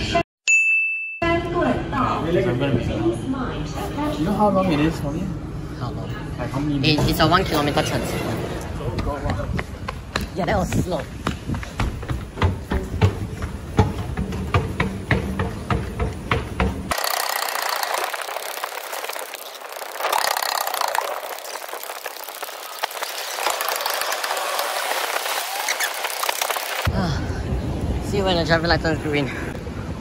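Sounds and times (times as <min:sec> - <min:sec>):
hurried footsteps on hard floor: 0:09.2 - 0:16.9
low rumble of wind on microphone: 0:26.9 - 0:30.0.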